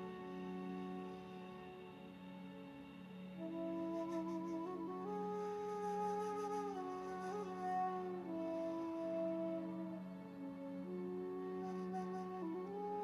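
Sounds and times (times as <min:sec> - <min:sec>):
slow flute-like melody: 0:00.0 - 0:13.0.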